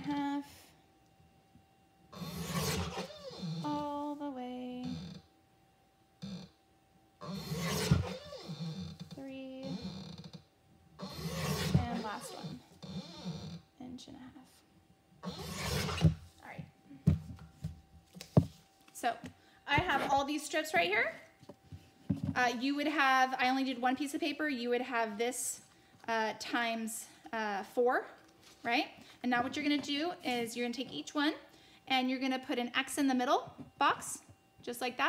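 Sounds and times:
paper cutter slicing paper: 2.2s - 3.1s, 11.1s - 12.0s, 15.4s - 16.1s.

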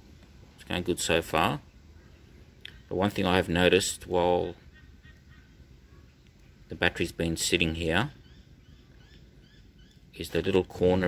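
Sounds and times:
small bird chirping: 7.8s - 10.8s.

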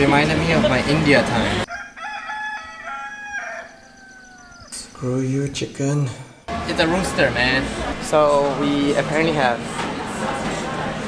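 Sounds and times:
rooster crowing: 1.7s - 4.7s.

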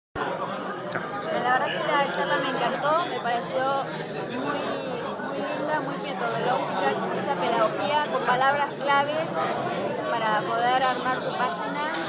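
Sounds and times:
crowd chatter: 0.2s - 12.0s.

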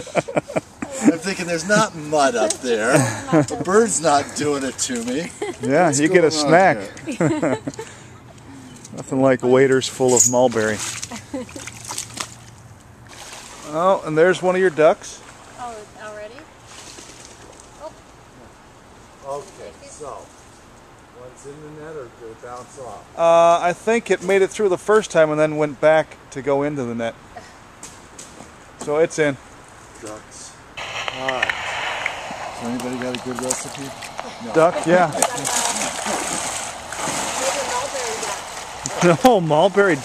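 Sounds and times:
water splashing in river: 13.1s - 13.8s, 34.9s - 40.0s
faint pitched sound: 30.8s - 40.0s.

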